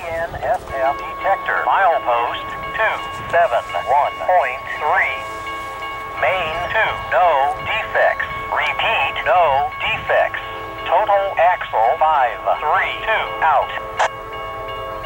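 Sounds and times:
synthesized voice over radio: 0.0s - 5.3s, 6.2s - 14.1s.

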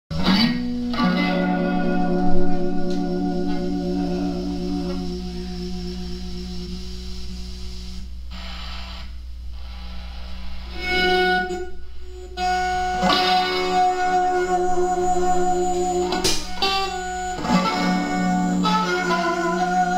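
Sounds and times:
electric guitar through effects: 0.1s - 19.9s.

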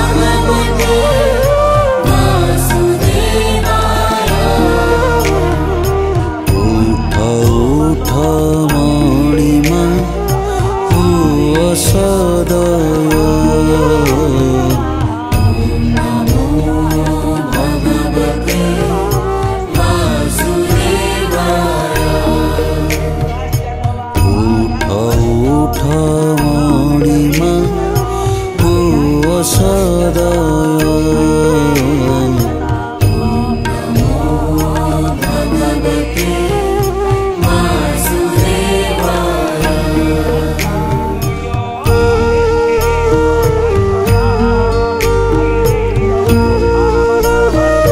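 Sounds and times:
devotional music with chant-like singing: 0.0s - 47.9s
light percussive strokes: 0.0s - 47.9s
steady low drone: 0.0s - 47.9s
sung mantra: 0.0s - 47.9s.

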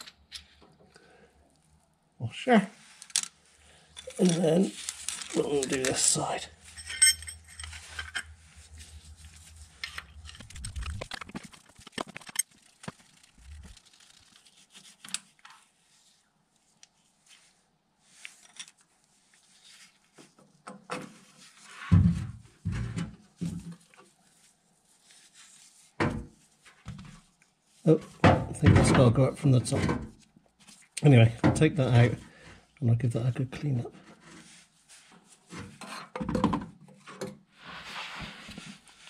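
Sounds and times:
spanner and bolt clinking: 4.0s - 8.4s.

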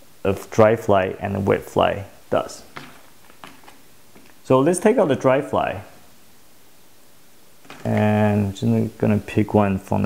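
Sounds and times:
faint steady hiss: 0.0s - 10.0s
man speaking: 0.2s - 2.8s, 4.4s - 6.0s, 7.8s - 10.0s.

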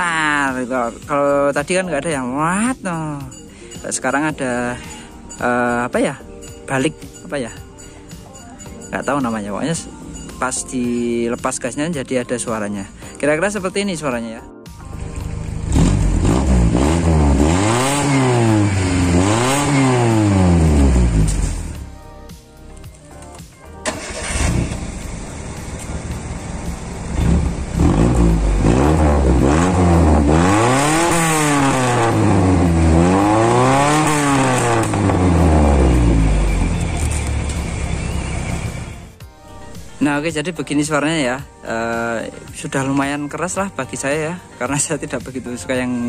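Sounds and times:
car engine revving: 15.0s - 21.9s, 23.8s - 39.1s.

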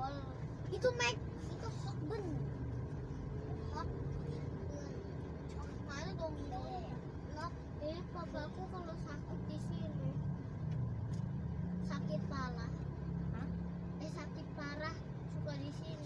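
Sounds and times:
car engine and road rumble: 0.0s - 16.0s
voices talking: 0.0s - 16.0s.

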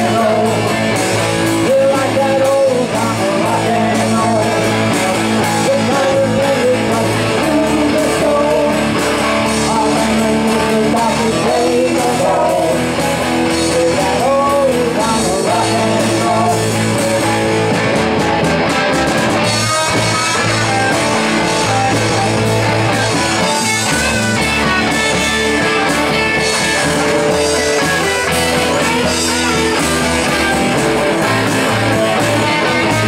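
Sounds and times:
bass and drums: 0.0s - 33.0s
electric guitar lead: 0.0s - 33.0s.

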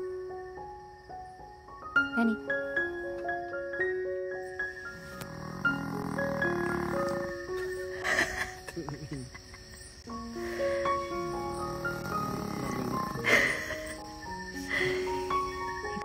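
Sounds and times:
background music with held notes: 0.0s - 8.8s, 9.9s - 16.0s
small dog snoring: 5.0s - 7.5s, 11.5s - 13.8s.

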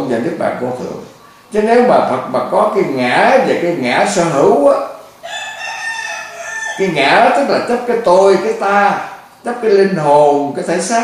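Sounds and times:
rooster crowing: 5.2s - 7.3s.

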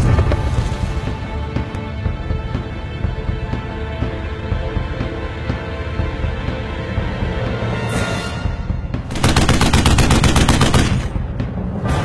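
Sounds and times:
soundtrack music: 0.0s - 12.0s
machine-gun fire sound effect: 9.1s - 11.1s.

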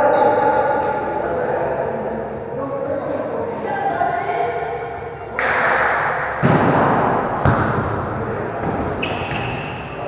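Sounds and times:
players' voices in echoing gym: 0.0s - 10.0s
volleyball being struck: 5.4s - 8.0s.

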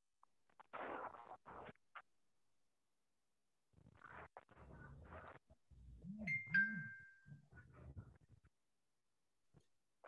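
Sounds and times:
two-note ding-dong chime: 6.3s - 7.2s.

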